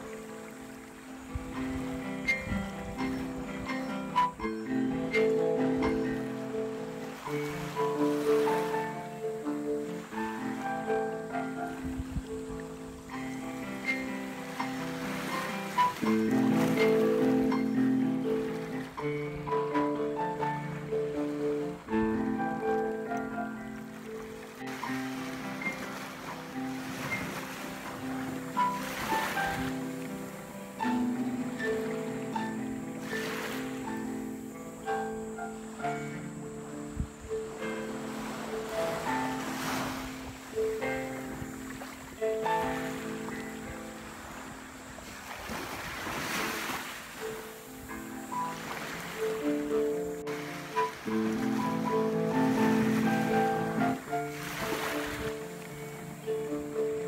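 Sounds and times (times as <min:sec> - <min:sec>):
ocean waves washing ashore: 0:00.0 - 0:57.0
solo piano: 0:00.0 - 0:57.0.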